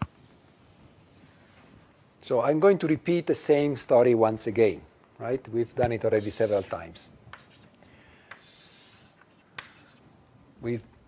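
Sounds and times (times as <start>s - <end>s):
scratchy writing on board: 6.2s - 10.0s.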